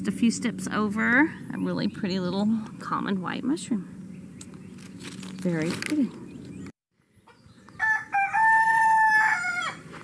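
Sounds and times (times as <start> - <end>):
rooster crowing: 7.7 - 10.0.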